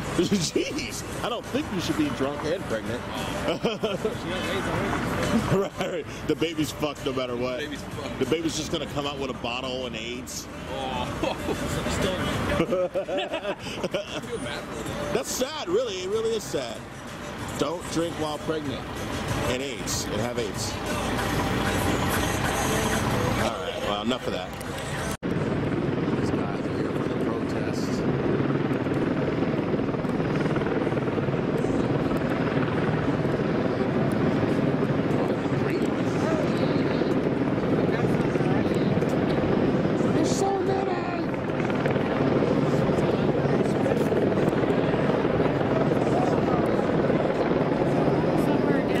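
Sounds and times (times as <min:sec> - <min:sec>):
helicopter rotor drone: 0:00.0 - 0:49.0.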